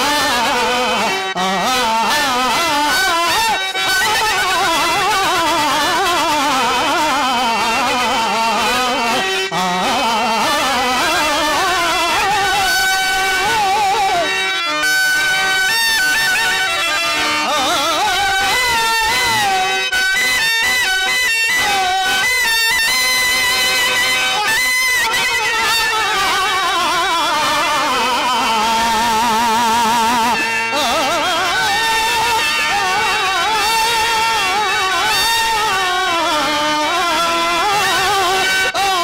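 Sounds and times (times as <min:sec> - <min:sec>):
man singing ornamented melody: 0:00.0 - 0:23.8, 0:24.4 - 0:39.0
sustained instrumental notes: 0:00.0 - 0:39.0.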